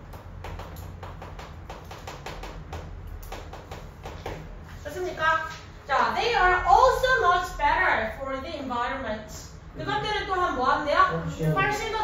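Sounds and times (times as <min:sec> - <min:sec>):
marker tapping and scratching on board: 0:00.0 - 0:04.5.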